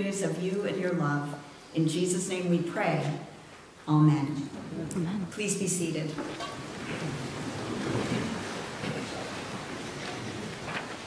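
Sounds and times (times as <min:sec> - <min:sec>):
congregation shuffling and rustling: 0:00.0 - 0:11.0.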